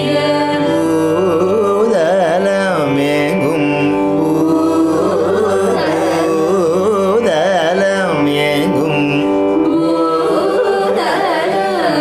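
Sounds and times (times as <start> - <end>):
person singing ornamented phrases: 0.0 - 12.0
steady drone: 0.0 - 12.0.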